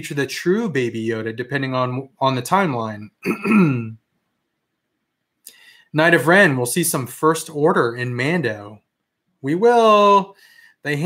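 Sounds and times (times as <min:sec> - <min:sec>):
man clearing his throat: 0:03.2 - 0:04.0.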